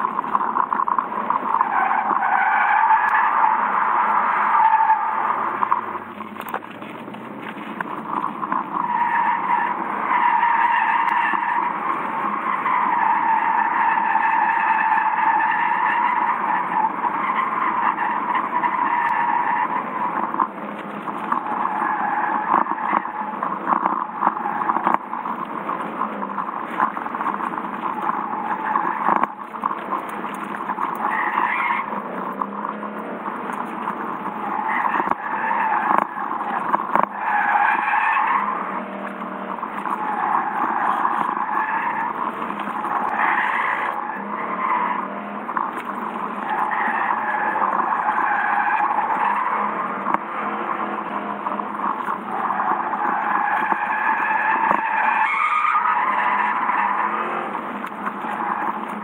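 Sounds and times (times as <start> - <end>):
car engine running: 0.0 - 2.2, 3.4 - 10.3, 16.0 - 54.9, 55.9 - 59.0
tyres squealing: 0.0 - 59.0.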